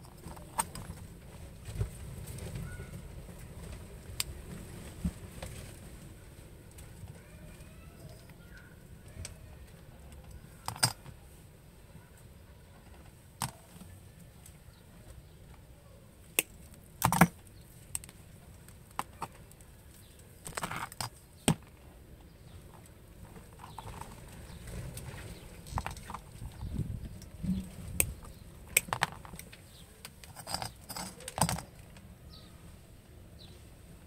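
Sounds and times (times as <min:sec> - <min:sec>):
cable rustling: 0:22.5 - 0:32.1.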